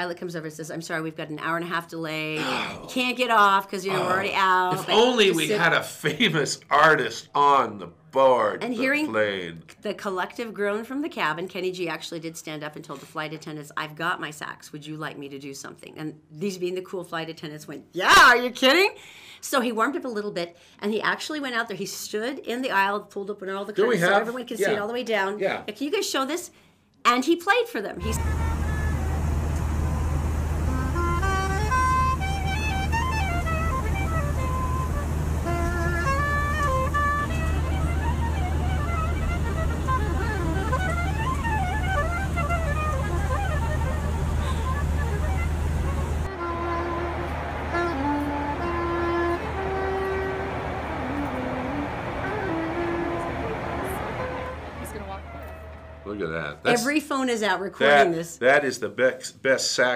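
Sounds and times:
soprano saxophone melody: 3.8s - 5.8s, 28.0s - 56.1s
airliner cabin drone: 28.0s - 56.0s.

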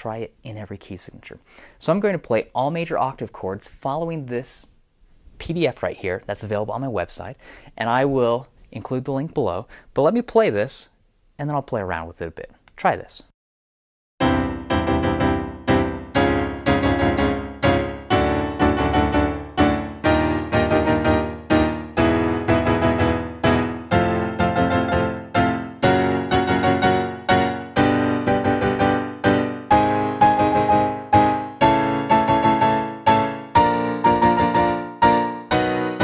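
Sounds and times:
digital piano chords: 14.2s - 36.0s.

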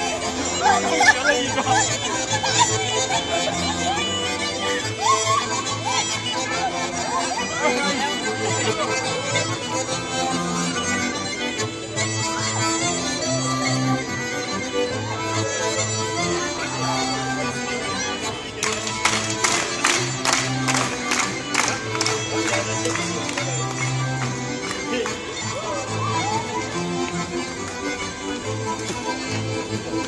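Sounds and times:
folk dance music duo: 0.0s - 30.0s.

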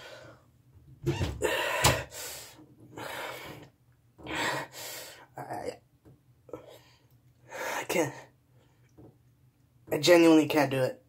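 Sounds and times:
person breathing heavily: 0.0s - 0.5s, 1.4s - 5.4s, 6.5s - 8.2s.

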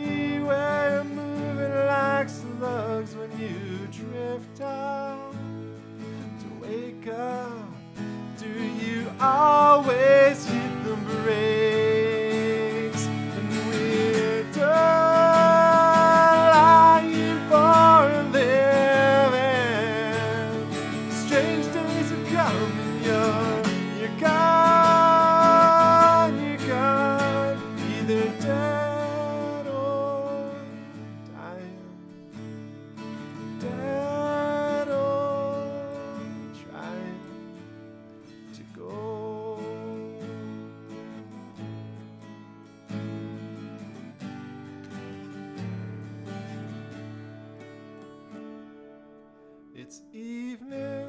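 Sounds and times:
man singing: 0.0s - 5.6s, 6.2s - 32.2s, 33.3s - 37.7s, 38.5s - 40.6s, 49.8s - 51.0s
strummed acoustic guitar: 0.0s - 51.0s.

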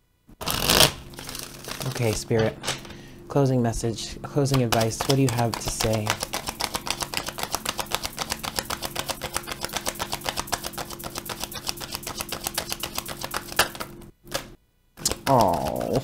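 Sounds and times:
cards being shuffled: 0.4s - 3.0s, 4.5s - 16.0s.

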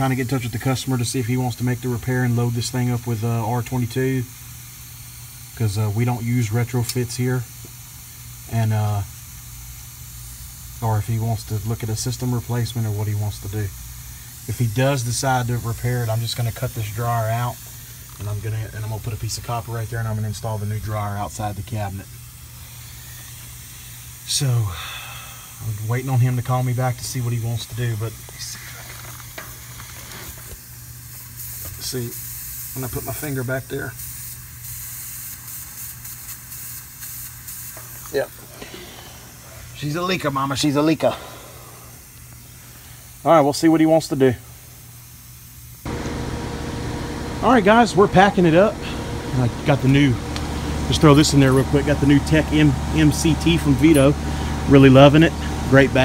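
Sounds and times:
refrigerant hissing from leak: 0.0s - 56.0s
steady low hum: 37.3s - 56.0s.

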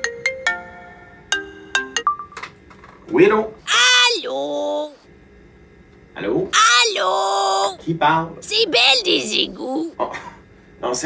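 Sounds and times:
phone ringtone melody: 0.0s - 2.4s.

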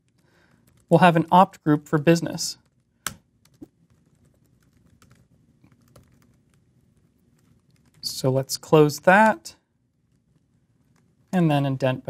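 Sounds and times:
typing on computer keyboard: 0.1s - 0.9s, 2.6s - 8.0s.

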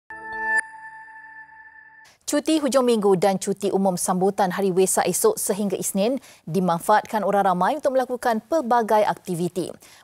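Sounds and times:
bright chime tone: 0.1s - 2.1s
synth chord: 0.1s - 2.1s.

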